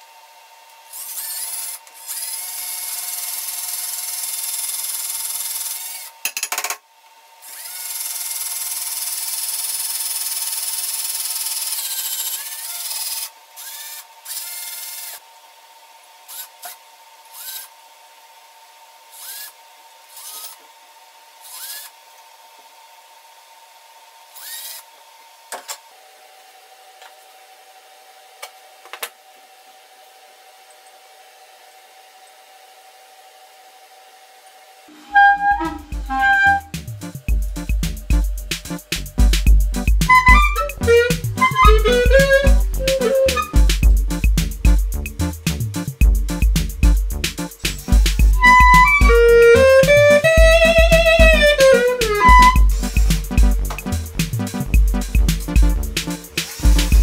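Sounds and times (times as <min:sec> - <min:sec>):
cordless drill boring into carrot: 0:00.6 - 0:06.7, 0:07.4 - 0:15.3, 0:16.2 - 0:17.8, 0:19.1 - 0:20.7, 0:21.4 - 0:22.2, 0:24.3 - 0:25.0.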